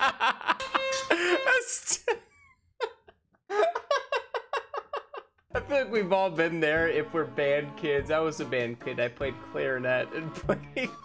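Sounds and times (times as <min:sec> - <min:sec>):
man laughing hard: 0:00.0 - 0:05.4, 0:10.3 - 0:11.0.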